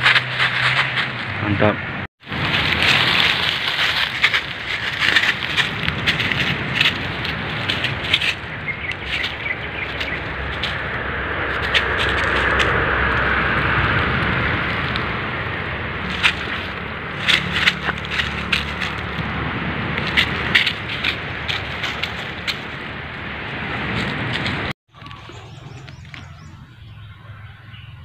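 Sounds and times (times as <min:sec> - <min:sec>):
footsteps crunching dry leaves: 0:02.2 - 0:26.6.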